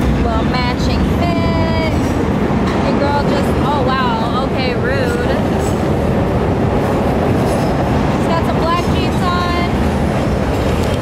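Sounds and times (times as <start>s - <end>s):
elevated train rumble: 0.0s - 11.0s.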